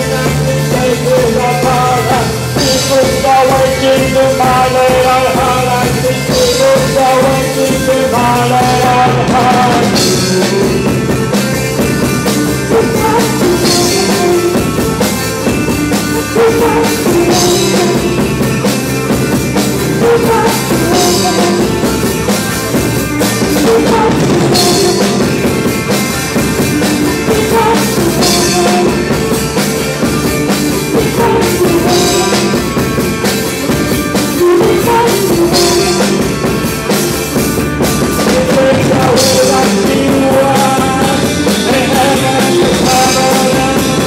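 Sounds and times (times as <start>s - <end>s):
live rock band playing: 0.0s - 44.0s.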